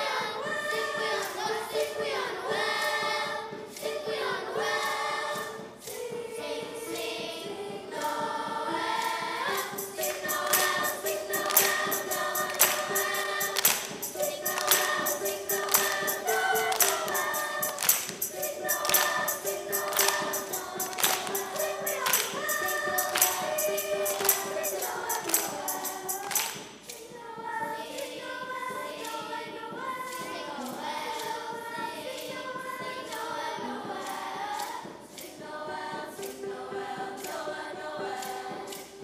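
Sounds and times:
children's choir singing: 0.0s - 39.0s
crisp percussion hits: 9.0s - 27.1s.

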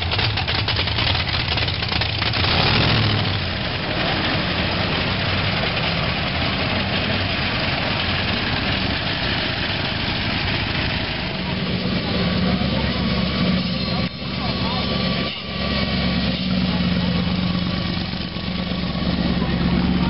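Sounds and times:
low engine drone: 0.0s - 20.0s
car engines driving past: 0.8s - 20.0s.

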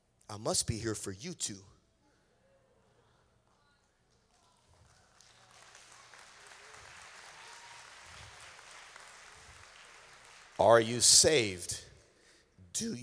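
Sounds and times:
faint congregation applause: 4.3s - 11.6s.

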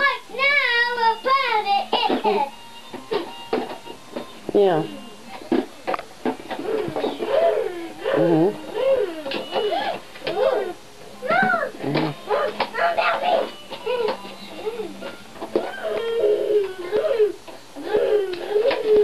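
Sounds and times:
young children babbling: 15.6s - 19.0s.

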